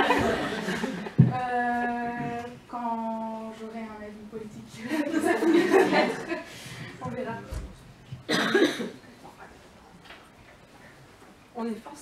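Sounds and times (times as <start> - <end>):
short cough: 8.3 - 9.0.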